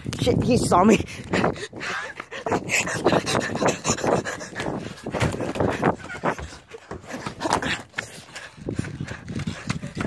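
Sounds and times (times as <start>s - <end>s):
person breathing hard: 1.0s - 10.0s.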